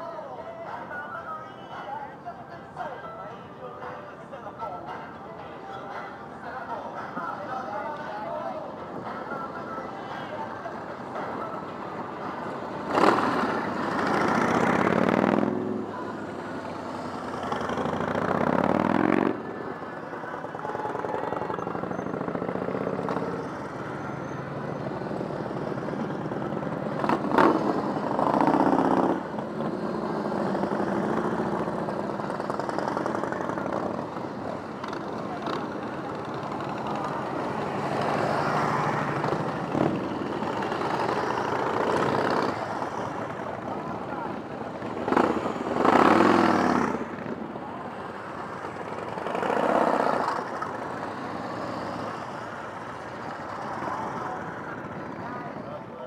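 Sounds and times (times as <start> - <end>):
motorcycles passing and accelerating: 6.0 - 56.0.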